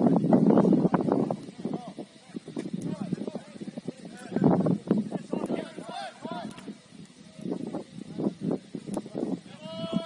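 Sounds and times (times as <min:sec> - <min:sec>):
footballers shouting: 0:05.1 - 0:07.0, 0:09.4 - 0:10.0.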